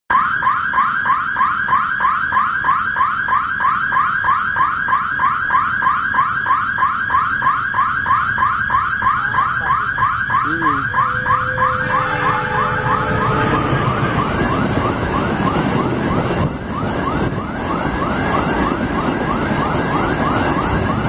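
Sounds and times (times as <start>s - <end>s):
level crossing alarm chirping: 0.1s - 18.4s.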